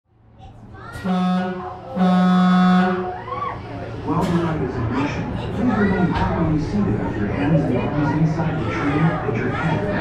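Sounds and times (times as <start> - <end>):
loud horn-like tone: 1.0 - 3.1.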